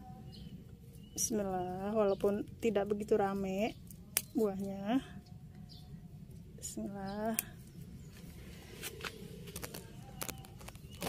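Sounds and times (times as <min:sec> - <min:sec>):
faint rustling of leaves: 0:00.0 - 0:11.0
low steady hum: 0:00.0 - 0:11.0.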